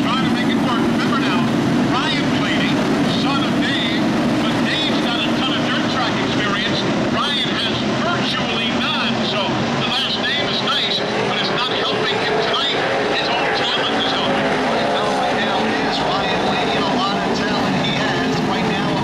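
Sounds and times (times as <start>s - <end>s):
race truck engines passing: 0.0s - 19.0s.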